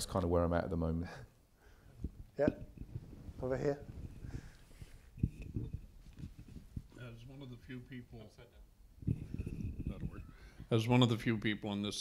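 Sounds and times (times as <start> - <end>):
microphone handling bumps: 2.0 - 7.0, 9.0 - 10.8.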